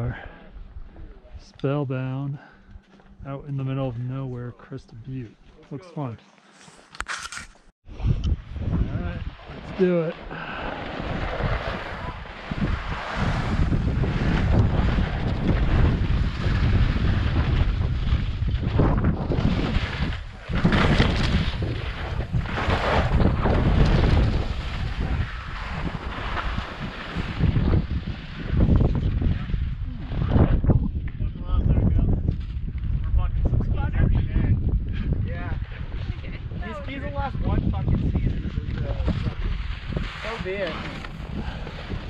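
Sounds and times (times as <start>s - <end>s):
wind buffeting microphone: 7.8s - 42.0s
skis scraping over snow: 8.9s - 29.7s, 35.6s - 42.0s.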